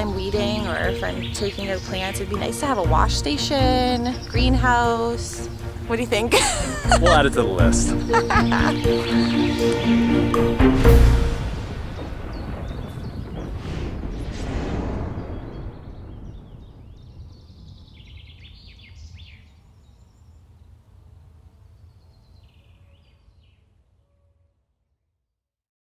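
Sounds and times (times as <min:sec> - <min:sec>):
heavy hit: 0:06.9 - 0:17.4
rushing whoosh: 0:08.8 - 0:17.7.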